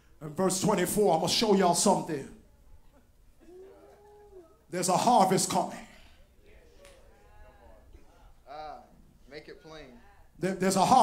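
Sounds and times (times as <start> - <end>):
faint voices: 2.4 - 4.7.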